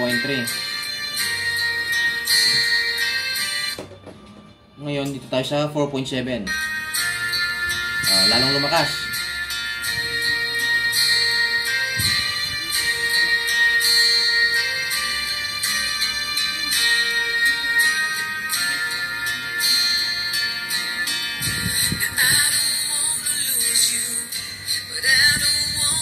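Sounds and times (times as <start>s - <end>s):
thin treble-heavy music from tweeter: 0.0s - 26.0s.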